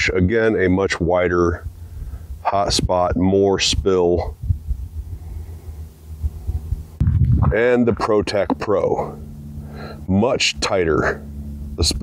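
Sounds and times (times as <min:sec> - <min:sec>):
low rumbling on microphone: 0:00.0 - 0:12.0.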